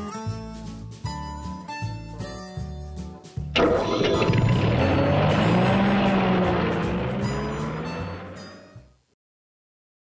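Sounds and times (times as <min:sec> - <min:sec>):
vehicle engine running: 0:03.6 - 0:08.8.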